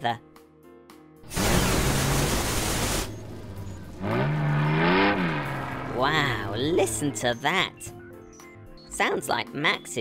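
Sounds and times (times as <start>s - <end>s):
cartoon engine revving blast: 1.3s - 3.1s.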